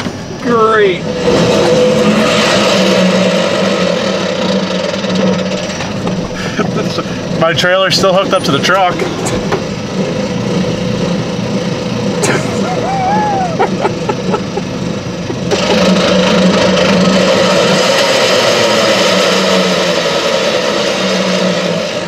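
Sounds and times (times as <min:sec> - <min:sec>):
truck engine idling: 0:04.0 - 0:17.8.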